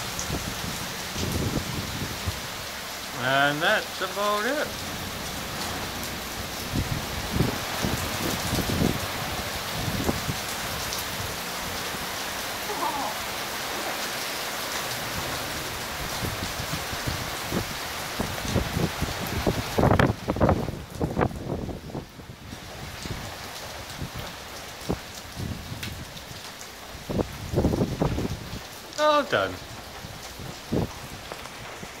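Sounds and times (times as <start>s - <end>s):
heavy rain on pavement and cars: 0.0s - 32.0s.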